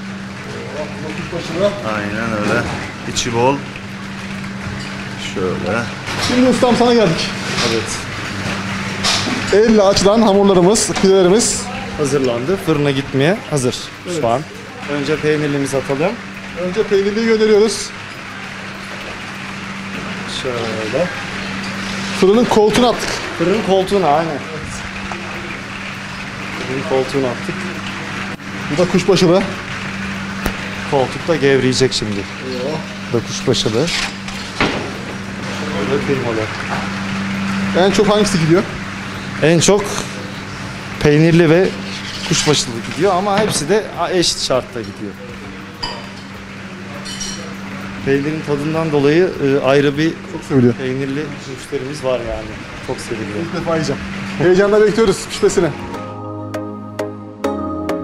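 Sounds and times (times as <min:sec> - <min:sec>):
kitchen background hum: 0:00.0 - 0:56.0.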